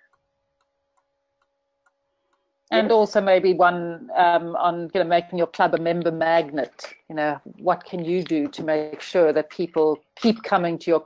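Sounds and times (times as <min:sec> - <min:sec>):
very faint steady hum: 0:00.0 - 0:11.0.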